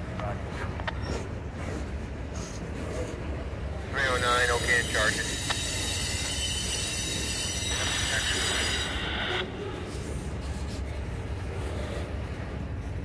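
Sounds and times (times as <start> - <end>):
train wheels squealing on rails: 0.9 - 2.7, 4.0 - 9.9.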